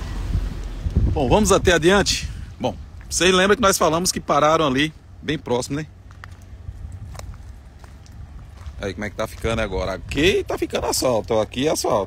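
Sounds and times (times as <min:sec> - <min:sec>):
steady low rumble: 0:00.0 - 0:12.0
footsteps crunching on gravel road: 0:02.8 - 0:12.0.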